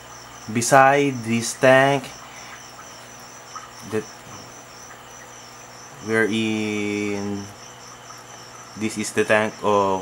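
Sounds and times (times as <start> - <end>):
high-pitched insect-like chirping: 0.0 - 10.0.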